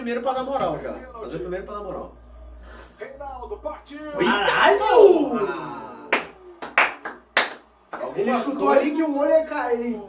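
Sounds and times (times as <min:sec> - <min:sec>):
hands clapping: 0:06.1 - 0:08.4.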